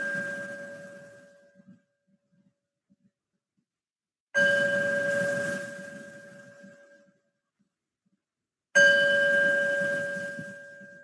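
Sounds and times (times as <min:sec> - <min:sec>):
meditation bell ringing: 0:00.0 - 0:01.6, 0:04.4 - 0:07.1, 0:08.8 - 0:11.0.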